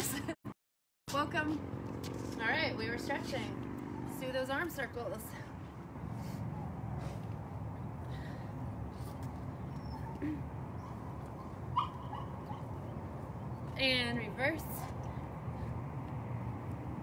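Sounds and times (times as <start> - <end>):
puppy whimpering: 9.6 - 12.6
puppy yip: 9.7 - 12.7.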